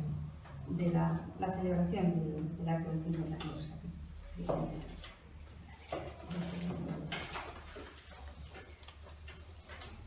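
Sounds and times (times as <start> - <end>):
paper rustling: 4.9 - 9.8.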